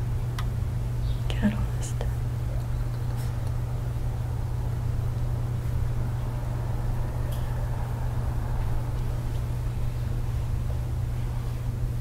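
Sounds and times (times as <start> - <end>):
steady low hum: 0.0 - 12.0
faint whispering: 1.3 - 2.2.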